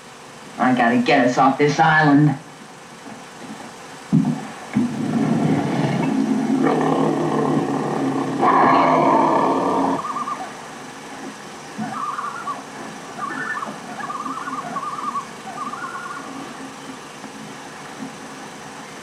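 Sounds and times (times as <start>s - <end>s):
cougar yowling: 6.0s - 10.6s, 11.8s - 16.8s
short wavering trills: 7.5s - 10.6s, 11.8s - 16.8s.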